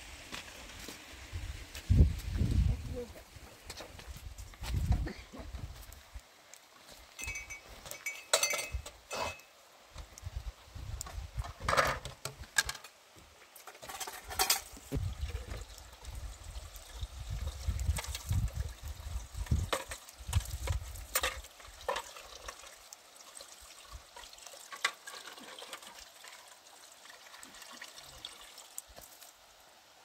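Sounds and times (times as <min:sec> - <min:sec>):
bucket and spoon knocks and clinks: 0:07.2 - 0:09.5, 0:13.7 - 0:14.7, 0:19.5 - 0:22.1
water running into plastic bucket: 0:14.8 - 0:29.2.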